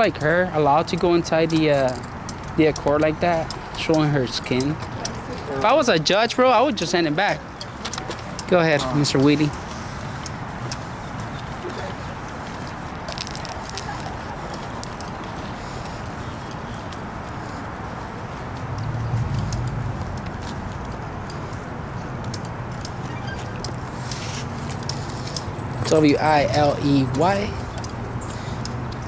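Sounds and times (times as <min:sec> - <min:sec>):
distant traffic hum: 0:00.0 - 0:29.0
footsteps: 0:07.0 - 0:29.0.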